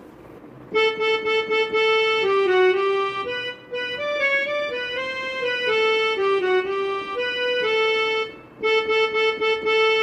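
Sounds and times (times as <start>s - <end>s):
electronic keyboard melody: 0.7s - 10.0s.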